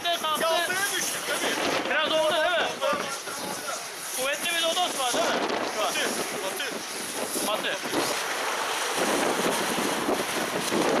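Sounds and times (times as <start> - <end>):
choppy waves: 0.0 - 11.0
gusty wind buffeting microphone: 0.0 - 11.0.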